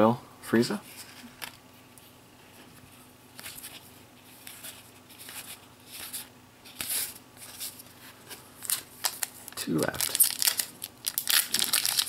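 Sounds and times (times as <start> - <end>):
trading cards rustling: 3.4 - 12.0.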